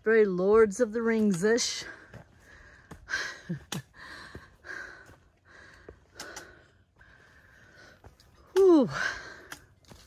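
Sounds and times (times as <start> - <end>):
footsteps on rock: 0.3 - 6.6, 9.4 - 10.0.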